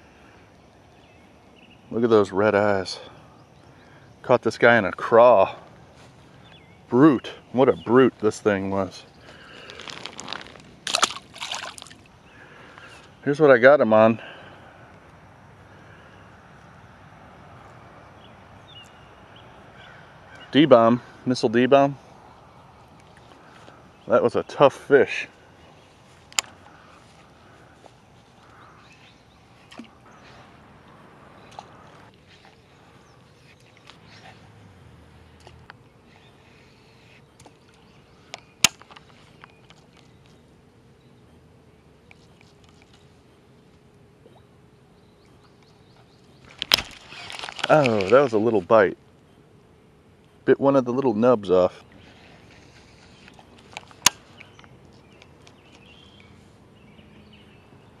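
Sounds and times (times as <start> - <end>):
faint outdoor ambience: 0.0 - 58.0
fishing reel clicks and rustles: 8.8 - 12.0, 46.5 - 48.6
water splashing and sloshing: 9.8 - 12.2, 29.6 - 30.6.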